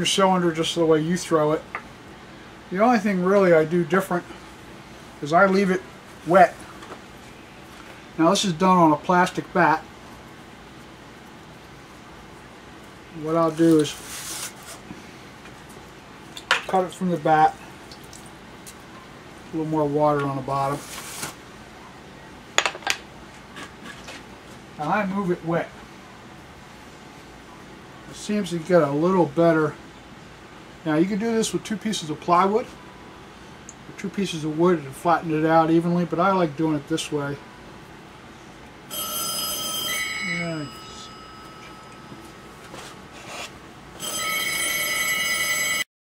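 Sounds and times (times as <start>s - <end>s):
faint background hum: 0.0s - 45.8s
telephone ringing: 38.9s - 42.6s, 44.0s - 45.9s.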